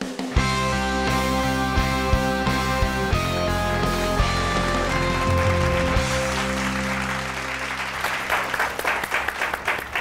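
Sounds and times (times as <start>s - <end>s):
background music with held notes: 0.1s - 8.4s
people clapping: 4.4s - 10.0s.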